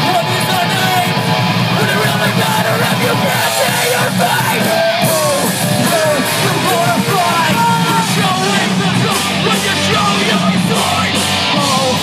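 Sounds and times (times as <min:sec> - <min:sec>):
live rock band playing: 0:00.0 - 0:12.0
person yelling vocals: 0:01.8 - 0:12.0.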